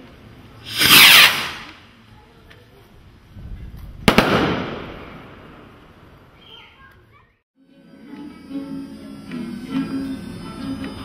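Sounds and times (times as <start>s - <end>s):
firework rocket bangs: 0.6s - 1.8s, 4.0s - 5.9s.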